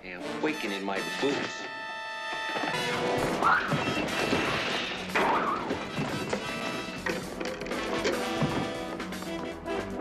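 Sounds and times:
action music: 0.0s - 10.0s
hits and crashes into wooden chairs: 2.4s - 9.2s.

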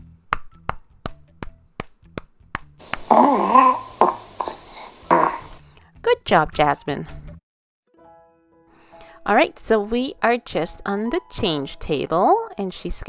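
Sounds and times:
baby burping: 2.8s - 5.6s.

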